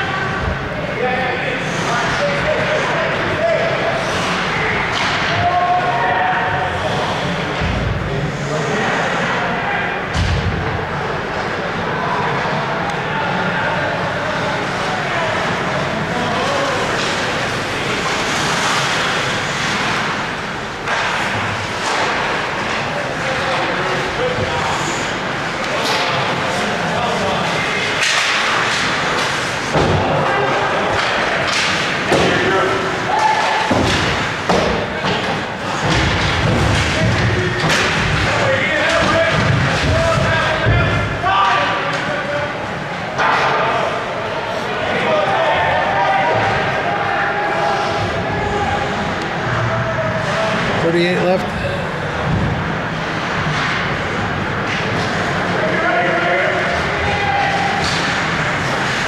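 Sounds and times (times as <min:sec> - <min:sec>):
people shouting: 0:29.9 - 0:34.3, 0:43.2 - 0:50.8, 0:55.6 - 0:59.0.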